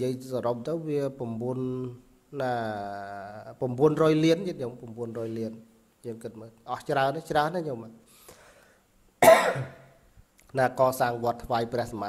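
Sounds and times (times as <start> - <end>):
man coughing: 9.2 - 10.0.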